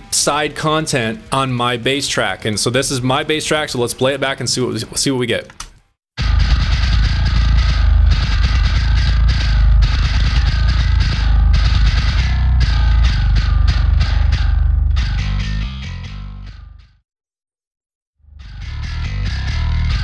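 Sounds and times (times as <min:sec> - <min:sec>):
distorted electric bass riff: 0:06.2 - 0:17.0, 0:18.2 - 0:20.0.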